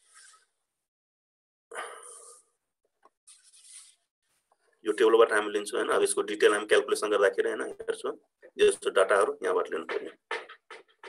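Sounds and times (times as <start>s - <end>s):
faint scratchy rustling: 3.3s - 5.8s.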